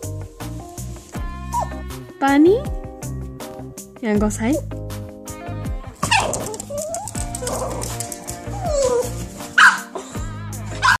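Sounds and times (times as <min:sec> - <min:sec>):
music playing: 0:00.0 - 0:11.0
small dog whining and yipping: 0:01.5 - 0:01.8, 0:06.0 - 0:10.1, 0:10.7 - 0:11.0.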